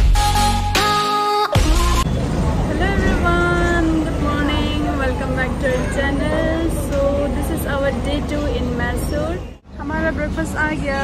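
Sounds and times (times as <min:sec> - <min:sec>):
road traffic rumble: 0:02.0 - 0:11.0
woman speaking: 0:02.7 - 0:11.0.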